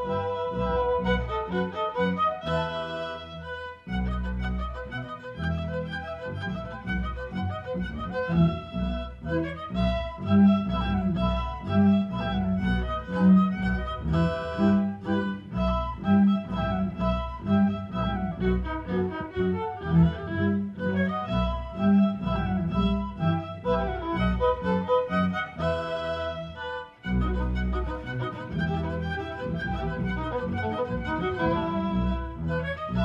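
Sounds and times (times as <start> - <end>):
cellos and double basses pulsing: 0.0 - 33.0
violins playing melody: 0.0 - 33.0.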